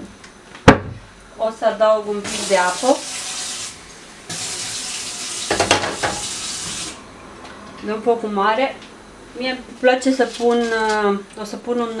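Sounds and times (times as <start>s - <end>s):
tap running water into pan: 2.3s - 7.0s.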